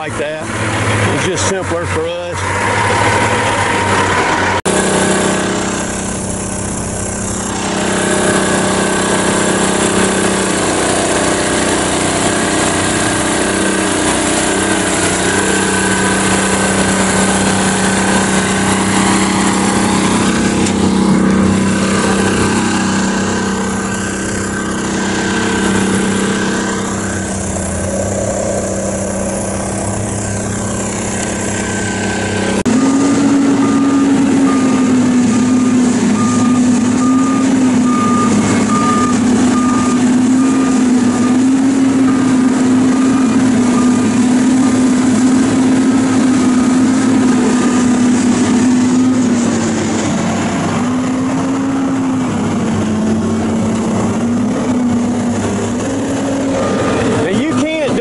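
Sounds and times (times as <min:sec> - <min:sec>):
engine idling: 0:00.0 - 0:58.0
higher engine drone: 0:00.0 - 0:58.0.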